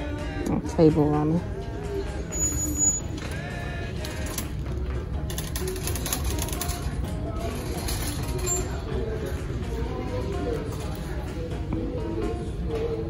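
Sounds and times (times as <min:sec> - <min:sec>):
faint background music: 0:00.0 - 0:13.0.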